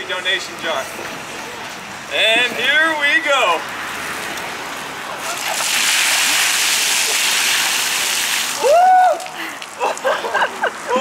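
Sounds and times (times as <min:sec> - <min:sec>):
ice water splashing: 0:05.2 - 0:10.0
person shouting: 0:08.6 - 0:09.3.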